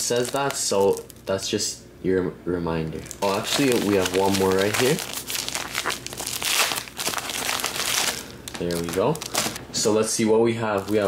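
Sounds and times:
foil pouch crackling: 0.0s - 1.3s, 3.0s - 9.6s, 10.7s - 11.0s.

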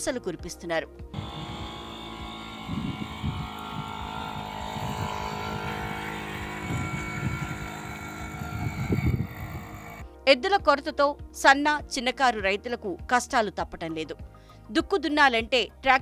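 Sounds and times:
moped engine running under load: 1.2s - 10.0s.

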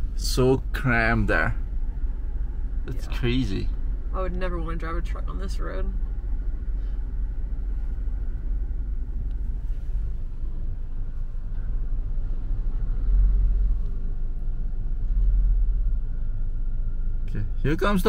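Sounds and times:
trucks passing close: 0.0s - 18.0s
vehicles rumbling: 0.0s - 18.0s.

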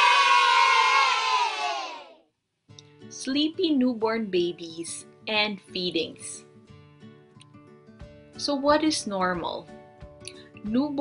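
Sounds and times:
children cheering: 0.0s - 2.2s.

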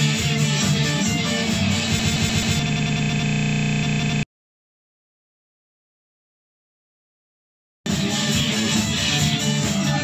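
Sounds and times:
rock band with electric guitar: 0.0s - 4.2s, 7.9s - 10.0s
buzzing audio stutter: 1.4s - 4.3s.

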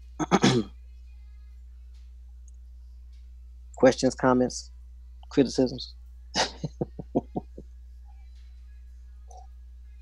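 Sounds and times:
person laughing: 6.4s - 7.6s.

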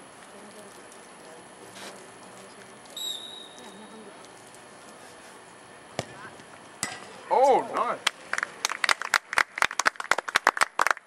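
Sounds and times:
referee's whistle: 3.0s - 3.6s
ball kicked knock: 5.9s - 7.1s.

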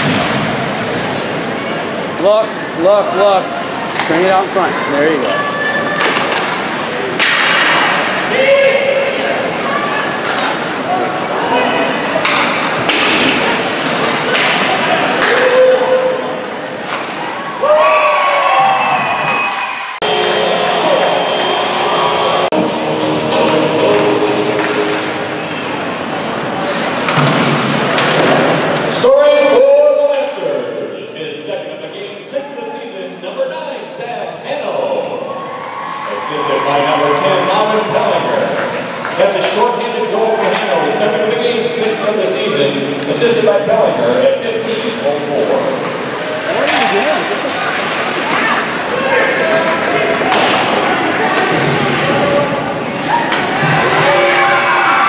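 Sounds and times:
players and spectators shouting: 4.4s - 6.8s, 35.2s - 38.9s, 48.3s - 55.0s.

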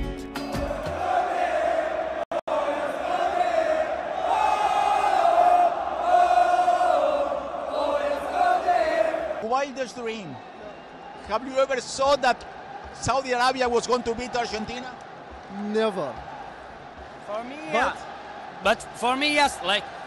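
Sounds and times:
stadium crowd chanting: 0.5s - 9.5s, 16.2s - 20.0s.

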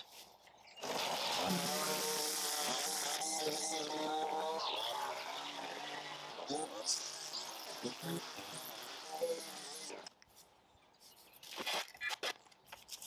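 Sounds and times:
string trimmer engine buzzing: 0.8s - 10.2s.

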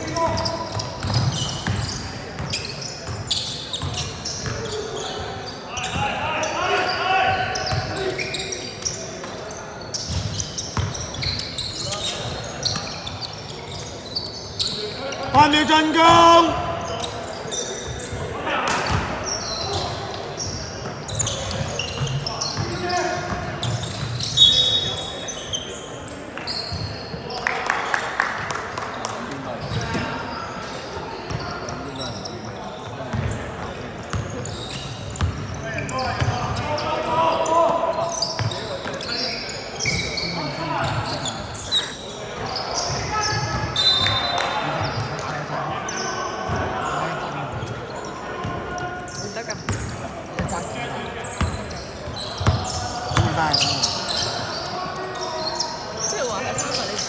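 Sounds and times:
basketball bouncing on court: 0.3s - 3.2s, 10.0s - 11.3s, 18.7s - 19.1s, 33.1s - 34.4s, 35.1s - 35.6s, 36.2s - 36.6s, 49.6s - 50.6s, 52.3s - 53.7s
people's voices: 11.2s - 57.0s.

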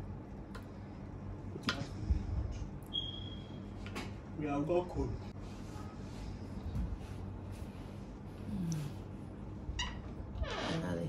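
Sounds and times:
woman humming while eating: 8.4s - 9.2s.

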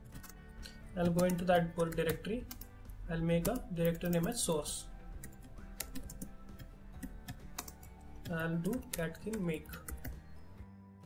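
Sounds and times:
keyboard keystroke clicks: 5.2s - 9.1s.

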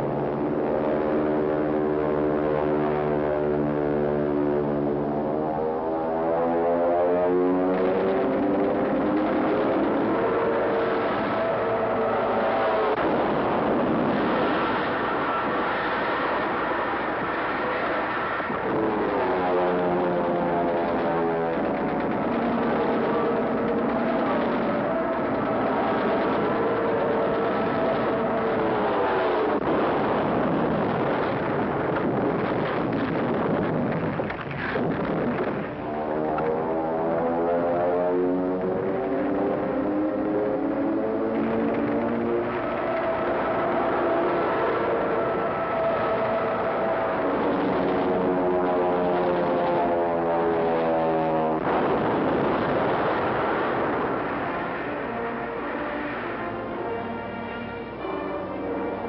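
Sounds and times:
warplane engines passing: 0.0s - 59.0s
anti-aircraft gunfire: 7.0s - 40.3s, 41.0s - 55.2s
explosions: 12.6s - 35.9s.

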